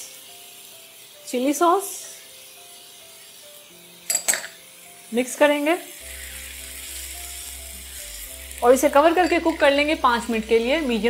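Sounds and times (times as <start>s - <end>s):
chicken sizzling in oil: 0.0s - 11.0s.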